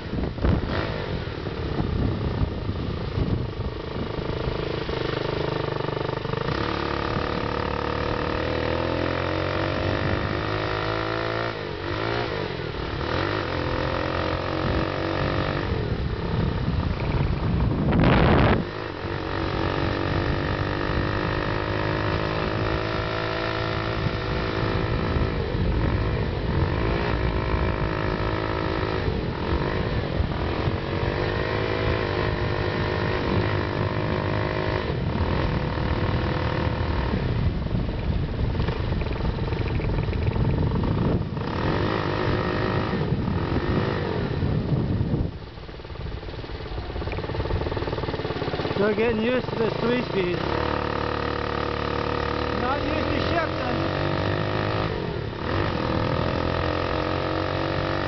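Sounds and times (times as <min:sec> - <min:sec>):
rushing wind noise: 0:00.0 - 0:58.0
small engine revving: 0:00.0 - 0:58.0.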